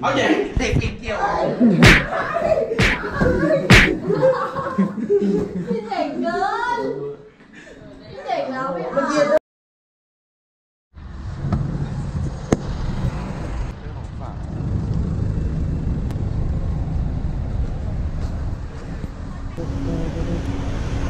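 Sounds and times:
steady low rumble: 11.1 - 21.0.

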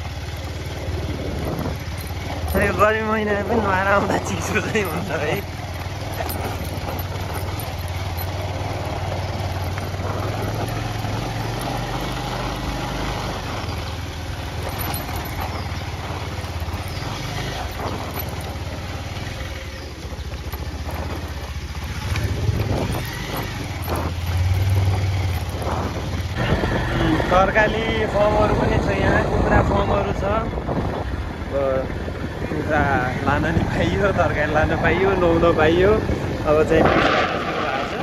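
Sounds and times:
motorbike engine running: 0.0 - 38.0
road and wind noise: 0.0 - 38.0.

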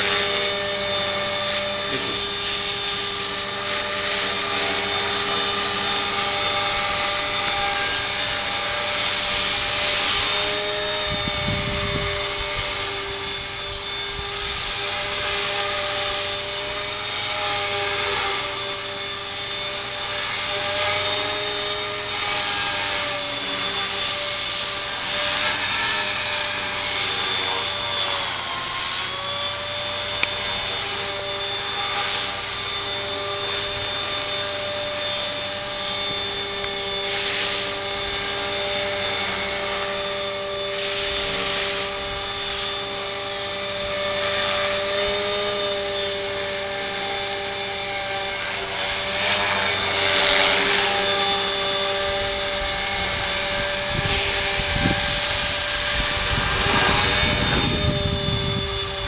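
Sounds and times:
model helicopter motor whine: 0.0 - 59.0.

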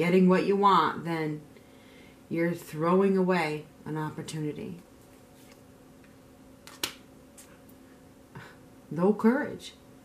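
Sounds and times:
faint steady hum: 0.0 - 10.0
cards clicking: 6.6 - 7.0.

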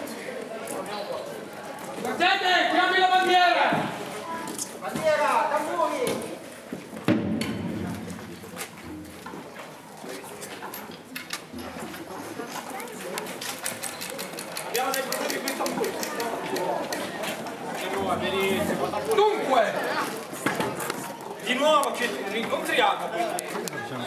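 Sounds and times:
people talking indistinctly: 11.4 - 24.0.

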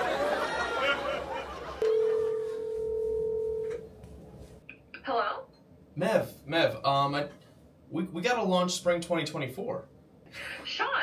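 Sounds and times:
steady telephone tone: 1.8 - 3.9.

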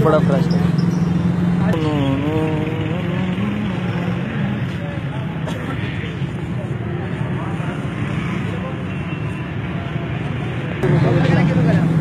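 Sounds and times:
vehicle engine running: 0.0 - 8.3, 10.3 - 12.0.

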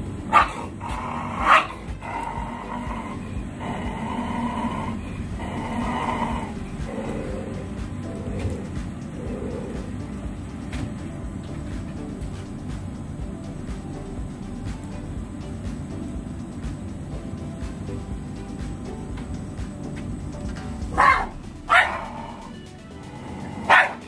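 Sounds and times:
background music: 0.0 - 24.0
dog barking: 0.3 - 0.7, 1.4 - 1.8, 21.0 - 22.2, 23.7 - 24.0.

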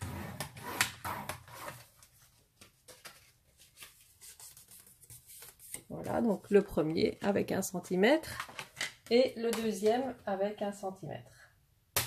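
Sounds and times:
paper rustling and creasing: 1.4 - 6.8.

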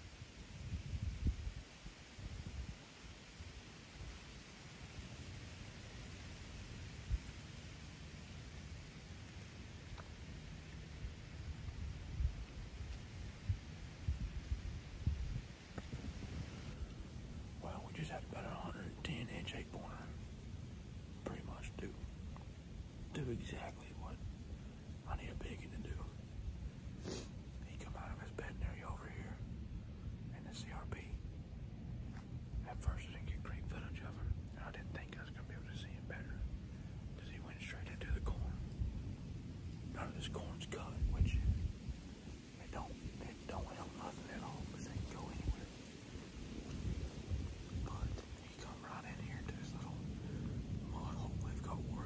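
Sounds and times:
wind buffeting microphone: 0.0 - 2.9, 10.9 - 19.2, 37.4 - 52.0
faint steady hiss: 0.0 - 52.0
low rumble: 0.0 - 52.0
man whispering: 17.4 - 20.4, 21.1 - 26.3, 27.0 - 31.4, 32.1 - 38.9, 39.8 - 41.7, 42.4 - 45.9, 46.5 - 52.0.

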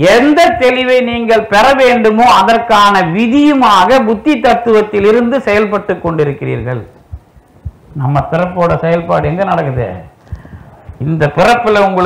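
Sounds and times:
man speaking: 0.0 - 7.0, 7.9 - 10.2, 11.0 - 12.0
faint soft low thumps: 0.0 - 11.5.

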